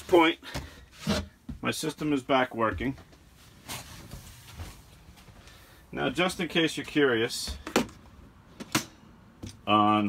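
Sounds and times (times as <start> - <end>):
soft rustle of person moving: 0.0 - 7.4.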